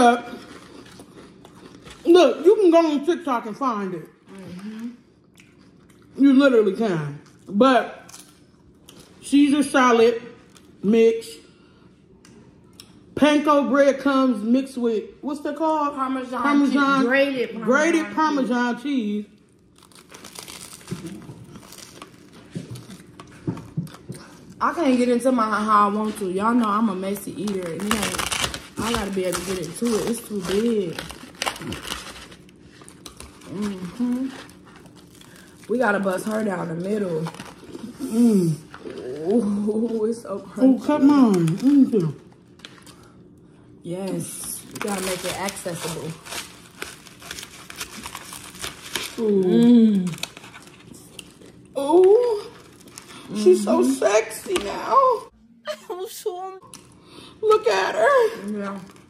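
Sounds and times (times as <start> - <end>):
crunchy chewing: 0.2 - 2.0
toasted bread crackling: 18.8 - 40.2, 44.2 - 54.5.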